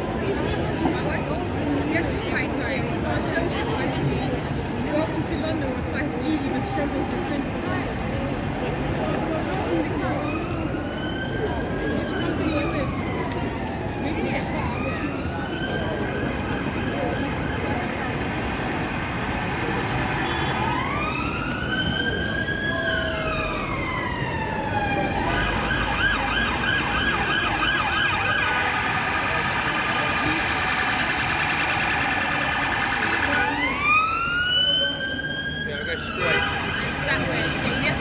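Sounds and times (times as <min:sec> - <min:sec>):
busy city street noise: 0:00.0 - 0:38.0
emergency vehicle siren: 0:00.0 - 0:38.0.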